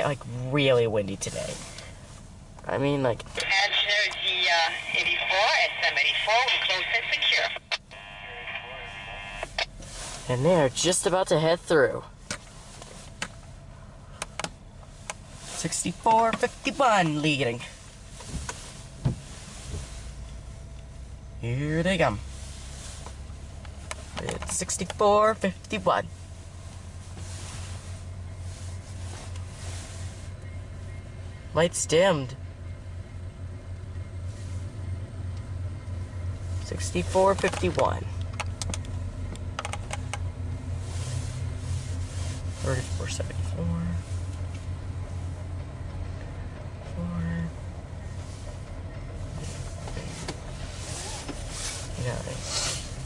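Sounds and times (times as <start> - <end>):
low hum inside car cabin: 0.0 - 53.0
train rolling over steel bridge: 44.7 - 50.6.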